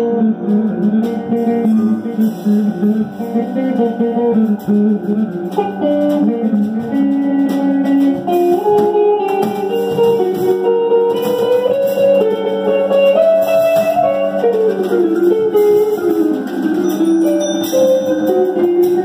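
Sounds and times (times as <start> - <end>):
live band music: 0.0 - 19.0.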